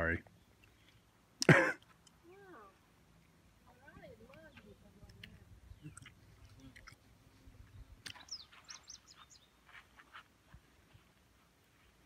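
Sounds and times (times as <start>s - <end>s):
bird chirps: 7.6s - 9.8s.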